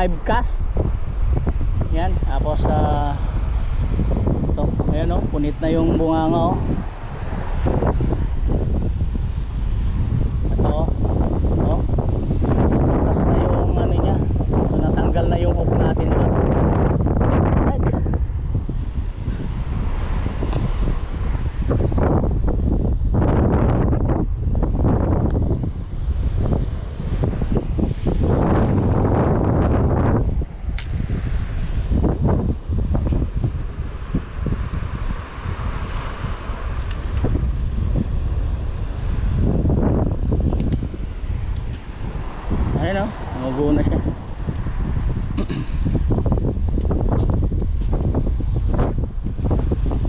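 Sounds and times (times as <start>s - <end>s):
surf washing: 0.0s - 50.0s
wind buffeting microphone: 0.0s - 50.0s.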